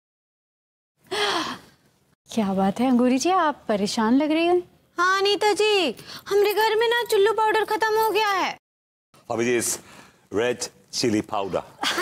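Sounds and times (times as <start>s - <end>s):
woman sighing heavily: 1.1s - 1.8s.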